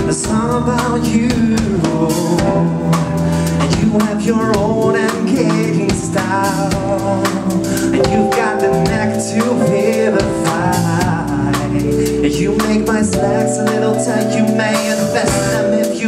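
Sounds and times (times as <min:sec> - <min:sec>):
drum kit beat: 0:00.0 - 0:16.0
electric bass: 0:00.0 - 0:16.0
man singing: 0:00.0 - 0:16.0.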